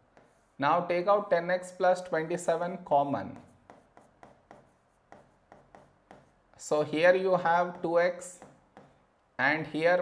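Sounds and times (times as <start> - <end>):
stylus tapping and scratching on screen: 0.0 - 1.1, 2.0 - 9.4.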